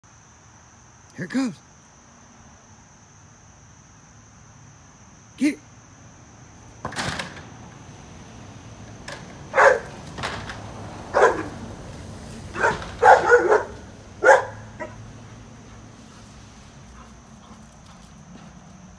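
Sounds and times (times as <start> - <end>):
insects droning: 0.0 - 18.9
dog barking: 9.5 - 10.0, 11.1 - 11.6, 12.5 - 15.0.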